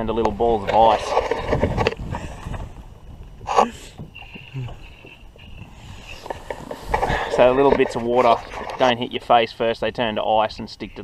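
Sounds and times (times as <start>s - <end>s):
rumble of wind and water: 0.0s - 11.0s
camera being handled: 1.0s - 2.0s, 6.1s - 8.8s.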